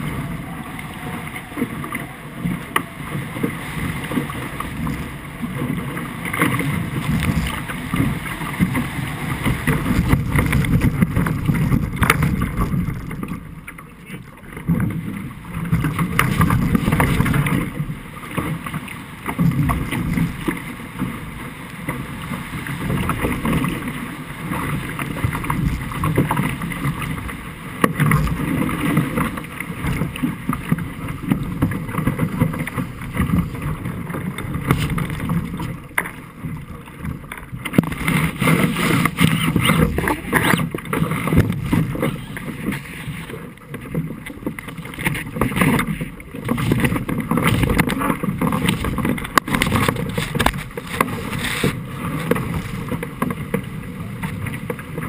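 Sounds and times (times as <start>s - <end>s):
wind buffeting microphone: 0.0s - 13.6s
water rushing along a hull: 0.0s - 55.0s.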